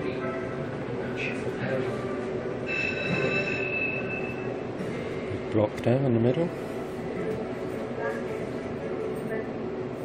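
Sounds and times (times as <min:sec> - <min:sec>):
steady high electronic tone: 0:02.7 - 0:04.5.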